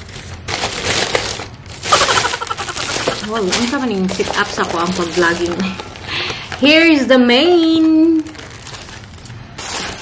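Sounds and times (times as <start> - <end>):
plastic bag and paper rustling: 0.0 - 10.0.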